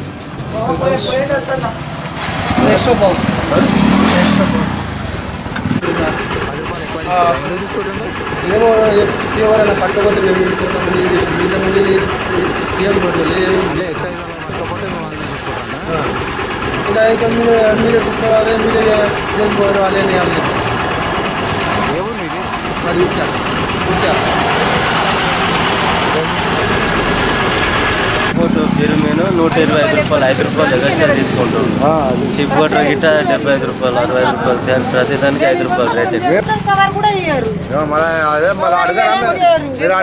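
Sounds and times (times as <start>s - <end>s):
street traffic: 0.0s - 40.0s
vehicle engine running: 0.0s - 40.0s.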